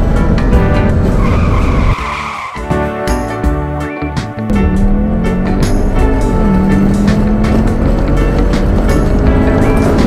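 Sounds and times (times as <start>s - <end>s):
background music: 0.0s - 10.0s
car tyre screech: 1.2s - 2.8s.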